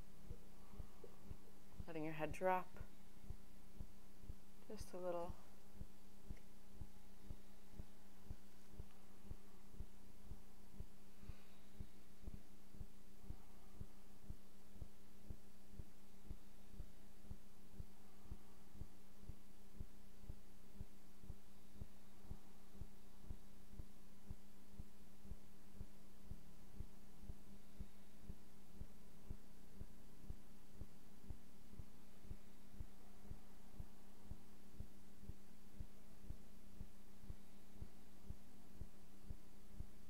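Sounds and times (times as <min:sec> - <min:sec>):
low pulsing hum: 0:00.0 - 0:40.0.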